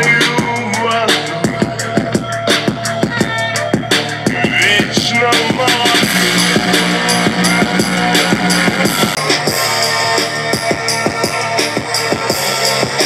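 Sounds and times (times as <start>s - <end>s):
rock music on small speaker: 0.0s - 13.0s.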